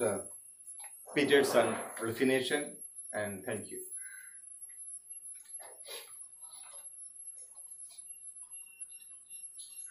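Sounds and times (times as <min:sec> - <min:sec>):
faint high-pitched whine: 0:00.0 - 0:09.9.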